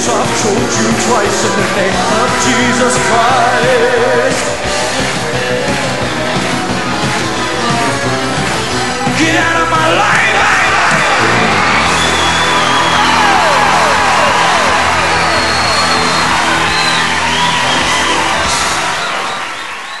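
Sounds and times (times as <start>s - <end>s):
rock band holding chord: 0.0s - 19.7s
crowd cheering: 0.0s - 20.0s.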